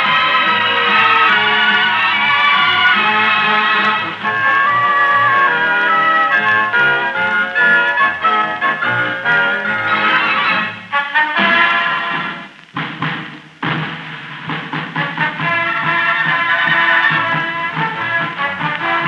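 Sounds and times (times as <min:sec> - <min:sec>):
orchestra on old radio recording: 0:00.0 - 0:19.0.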